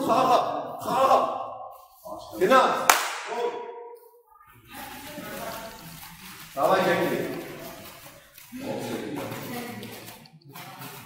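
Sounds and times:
raised voices in a gym: 0:00.0 - 0:11.0.

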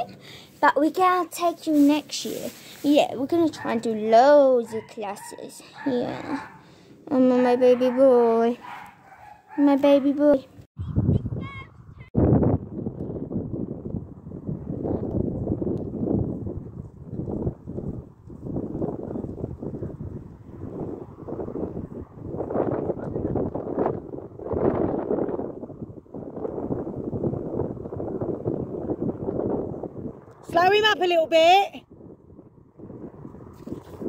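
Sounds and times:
wind buffeting microphone: 0:10.6 - 0:34.0.

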